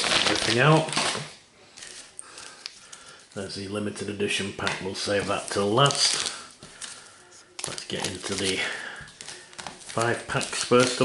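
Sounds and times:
foil pack rustling: 0.0s - 3.5s, 4.6s - 11.0s.

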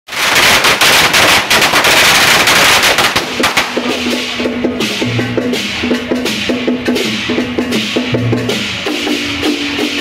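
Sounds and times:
firecrackers crackling: 0.1s - 5.1s
processional music with beat: 1.6s - 10.0s.

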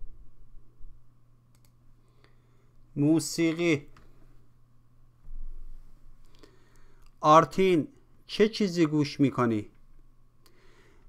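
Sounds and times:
low steady hum: 0.0s - 11.0s
faint computer mouse clicks: 1.5s - 1.8s.

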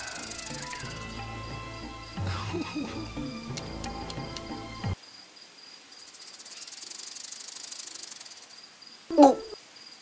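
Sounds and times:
snake rattle buzz: 0.0s - 1.3s, 6.0s - 8.6s.

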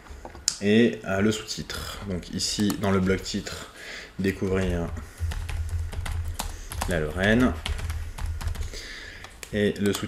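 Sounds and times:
low steady hum: 0.0s - 10.0s
keyboard typing: 4.4s - 10.0s.

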